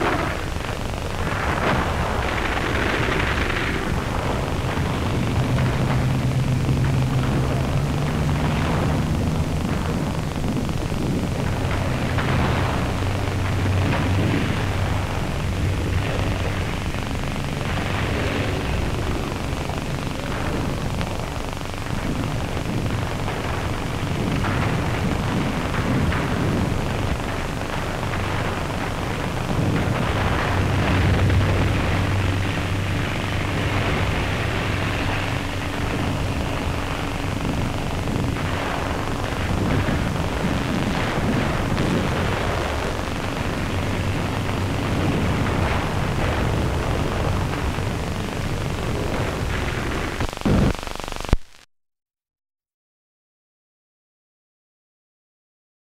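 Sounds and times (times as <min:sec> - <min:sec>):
outboard motors droning: 0:00.0 - 0:50.2
film soundtrack hiss: 0:00.0 - 0:51.6.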